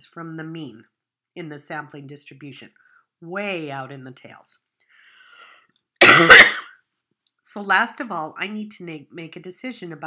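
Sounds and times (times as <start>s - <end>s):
faint breath: 4.8s - 5.8s
woman coughing: 6.0s - 6.8s.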